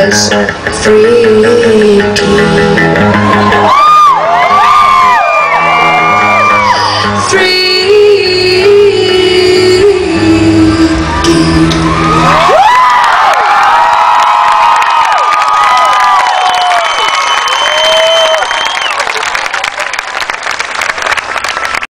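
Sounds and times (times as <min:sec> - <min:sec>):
crowd cheering and clapping: 0:02.9 - 0:07.4, 0:10.9 - 0:21.9
whoops: 0:03.2 - 0:07.3, 0:11.2 - 0:20.0.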